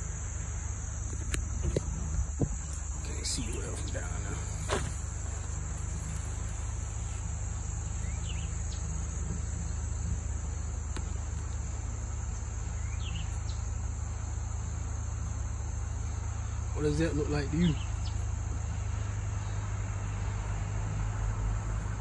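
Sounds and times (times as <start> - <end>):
insects chirring: 0.0 - 22.0
pickup truck rumbling: 0.0 - 22.0.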